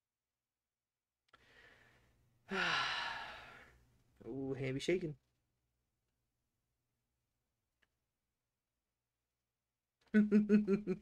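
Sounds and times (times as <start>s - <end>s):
man sighing: 2.5s - 3.8s.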